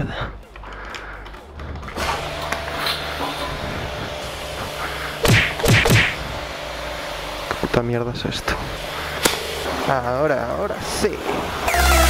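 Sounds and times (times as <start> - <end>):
pressure washer spraying: 2.0 - 7.4.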